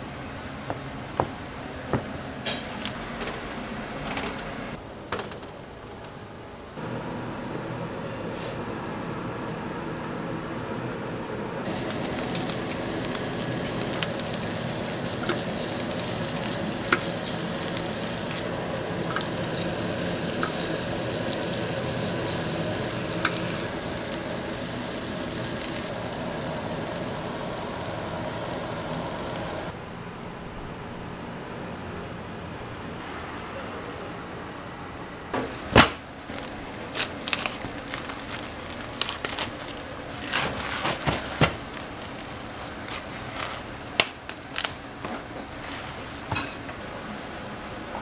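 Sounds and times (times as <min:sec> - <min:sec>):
meat sizzling on a grill: 0:11.7 - 0:29.7.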